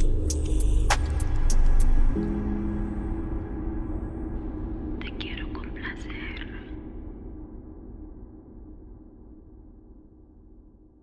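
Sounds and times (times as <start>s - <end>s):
low musical drone: 0.0s - 10.8s
person whispering: 5.0s - 6.8s.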